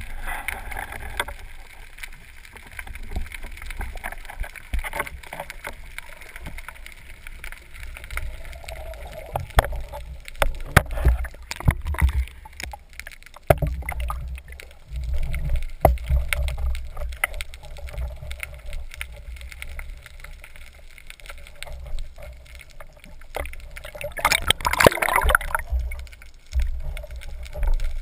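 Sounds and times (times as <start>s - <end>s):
muffled underwater rumble: 0.0s - 28.0s.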